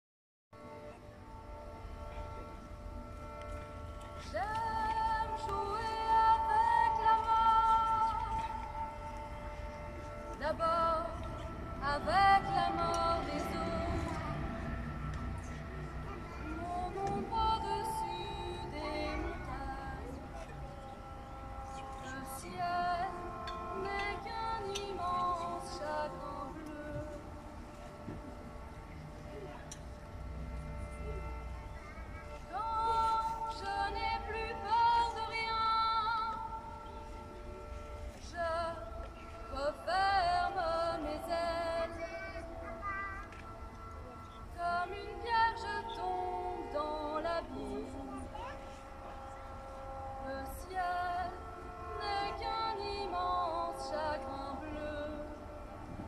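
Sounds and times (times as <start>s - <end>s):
sustained accompaniment: 0.6s - 56.0s
violin melody: 0.6s - 56.0s.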